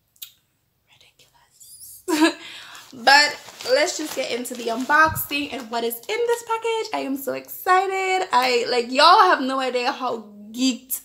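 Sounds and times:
woman's lip smack: 0.2s - 0.4s
woman laughing: 2.0s - 2.5s.

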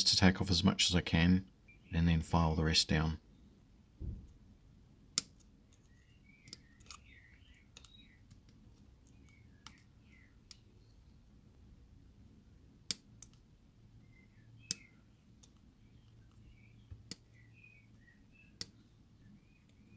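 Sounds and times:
nippers snipping plastic clicks: 14.7s - 15.6s.

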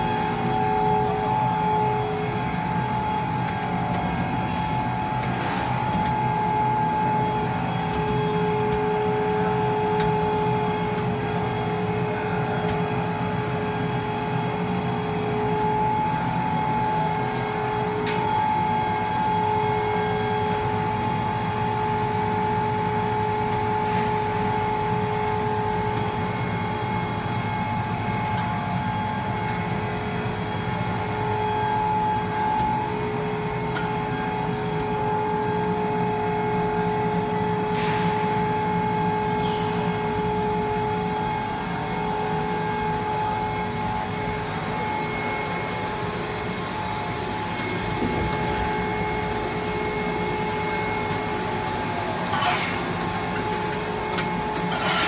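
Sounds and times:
extrusion machine hum: 0.0s - 55.0s
motors and rollers rumbling: 0.0s - 55.0s.

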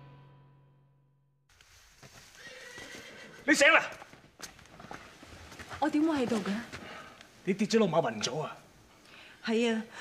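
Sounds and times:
horse whinnying: 2.4s - 3.5s.

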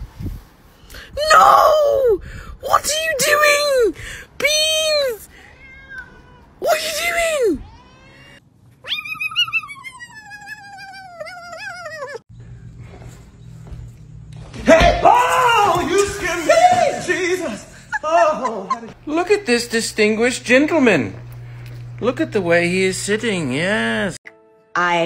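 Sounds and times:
cats yowling: 5.3s - 12.2s
kitten meowing: 5.4s - 6.4s, 7.1s - 12.2s.

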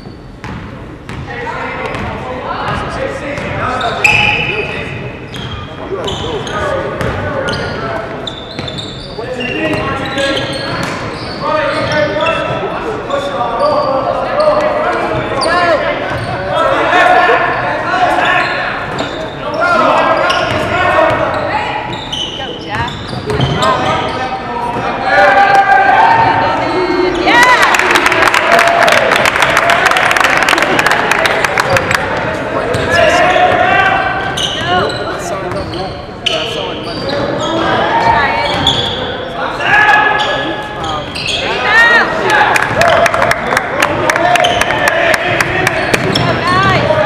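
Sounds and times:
sneakers squeaking and thudding: 0.0s - 13.2s, 13.8s - 16.6s, 18.2s - 25.0s, 31.6s - 39.2s, 40.1s - 41.7s, 44.4s - 47.0s
voices echoing in a hall: 0.0s - 47.0s.

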